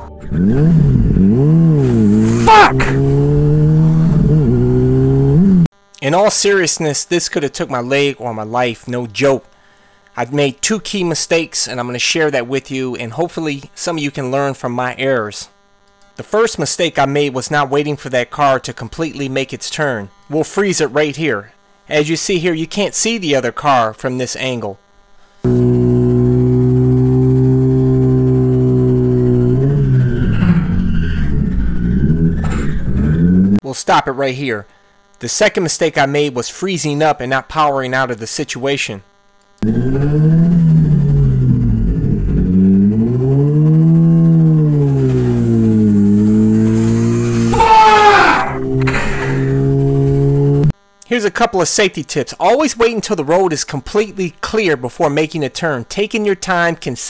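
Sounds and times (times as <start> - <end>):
motorcycle engine running: 0.0 - 5.7, 25.4 - 33.6, 39.6 - 50.8.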